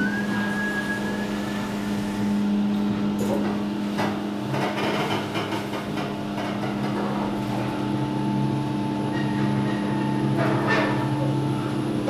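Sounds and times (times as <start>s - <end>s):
lift electric hum: 0.0s - 12.0s.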